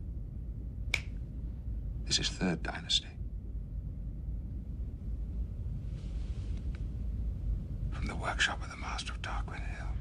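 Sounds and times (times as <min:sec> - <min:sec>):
low steady background hum: 0:00.0 - 0:10.0
sharp click: 0:00.9 - 0:01.2.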